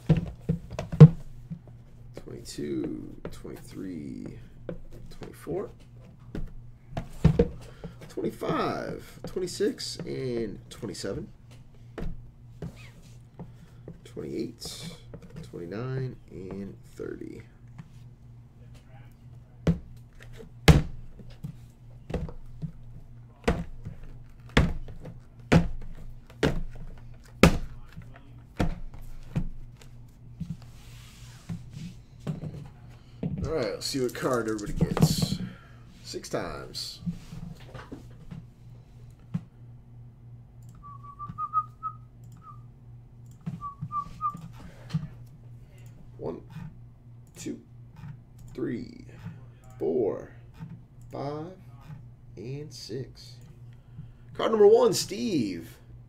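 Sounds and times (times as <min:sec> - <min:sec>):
low electrical hum: 0:00.0 - 0:56.0
person whistling: 0:40.8 - 0:42.6, 0:43.6 - 0:44.4.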